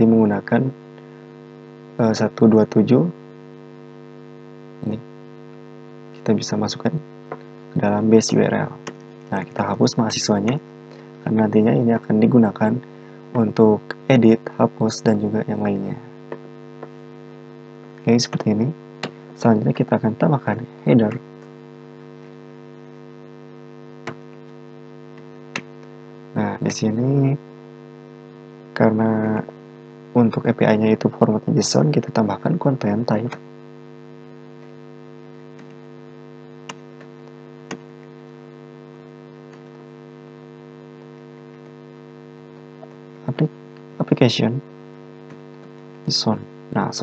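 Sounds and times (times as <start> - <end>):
electrical mains hum: 0.0 - 47.0.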